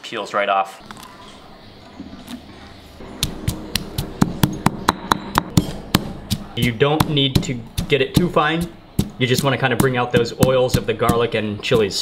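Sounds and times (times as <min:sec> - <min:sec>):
stone pestle pounding in mortar: 0:03.0 - 0:12.0.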